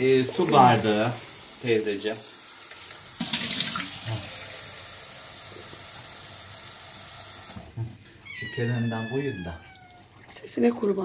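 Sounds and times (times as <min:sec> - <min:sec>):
tap water filling a cup: 0:02.5 - 0:07.7.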